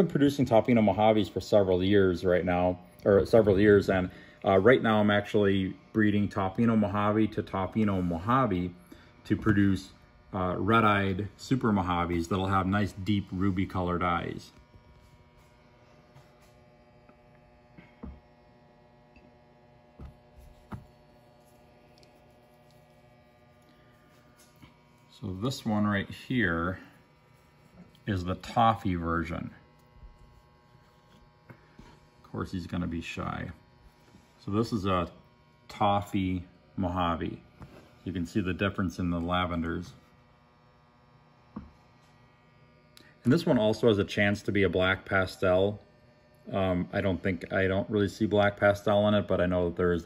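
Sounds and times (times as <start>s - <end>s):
steady electrical hum: 0.0s - 50.0s.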